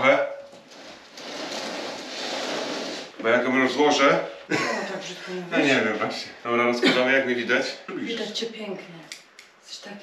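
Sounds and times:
tree branches rustling and scraping: 0.7 - 3.2.

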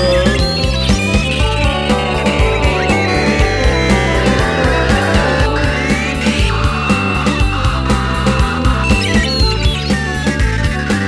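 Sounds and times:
instrumental rock music: 0.0 - 11.0
high gliding tone: 1.0 - 8.4.

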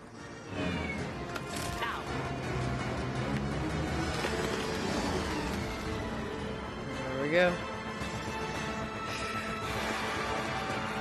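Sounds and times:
dramatic orchestral score: 0.0 - 11.0.

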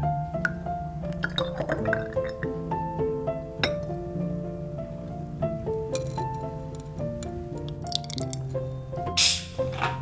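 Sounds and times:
background music of held notes: 0.0 - 10.0
syrup dripping into glass bottle: 1.1 - 2.6, 7.7 - 8.5.

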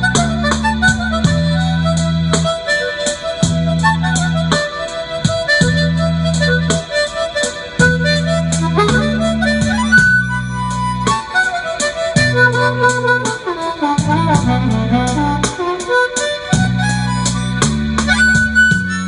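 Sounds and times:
harmonica playing blues: 0.0 - 19.0
low sustained bass: 14.0 - 15.5.

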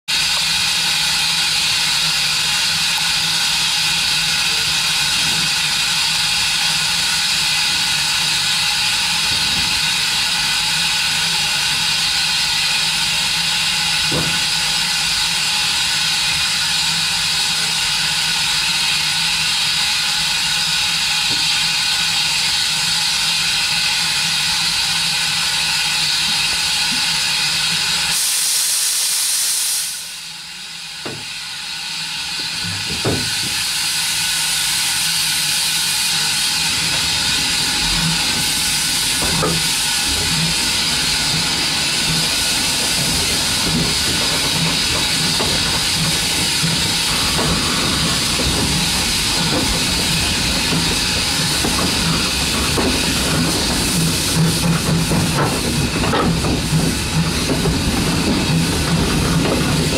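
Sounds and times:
steam locomotive hissing: 0.1 - 59.9.

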